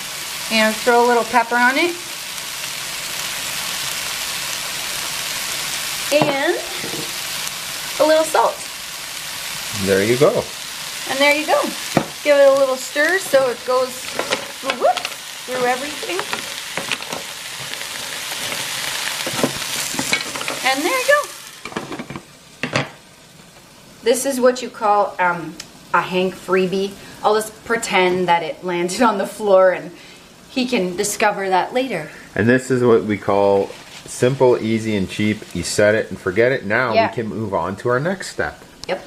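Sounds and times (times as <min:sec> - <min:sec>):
vegetables sizzling in skillet: 0:00.0 - 0:39.0
spatula scraping and tapping pan: 0:06.2 - 0:07.1, 0:14.0 - 0:20.7.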